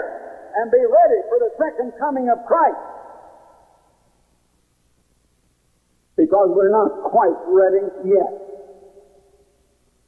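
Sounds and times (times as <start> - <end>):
man preaching with echo: 0.0 - 3.6, 6.2 - 8.8.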